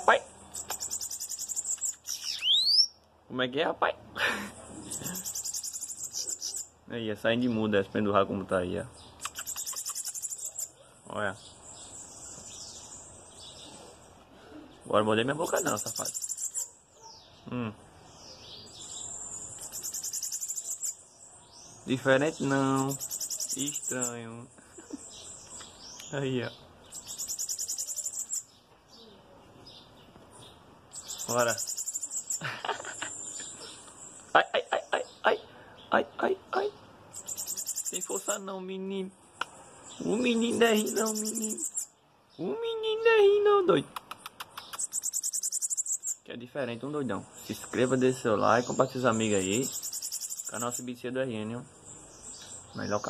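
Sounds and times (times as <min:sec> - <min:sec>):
bird singing: 0:00.0 - 0:03.1, 0:04.4 - 0:53.0
rapid ticking trill: 0:37.2 - 0:38.2.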